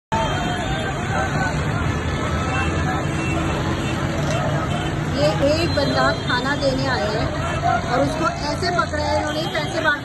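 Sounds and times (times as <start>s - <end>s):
babble of many voices: 0.1s - 10.0s
street traffic noise: 0.1s - 10.0s.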